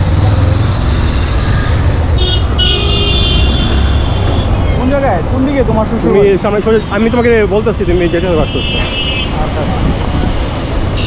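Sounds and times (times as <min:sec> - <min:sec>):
vehicle horn honking: 0:02.2 - 0:04.4
wind on microphone: 0:08.7 - 0:11.0.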